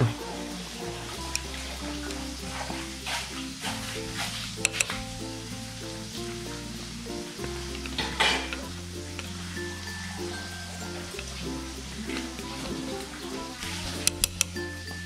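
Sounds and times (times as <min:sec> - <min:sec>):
background music with held notes: 0:00.0 - 0:15.0
chopsticks stirring broth in pot: 0:00.1 - 0:05.0.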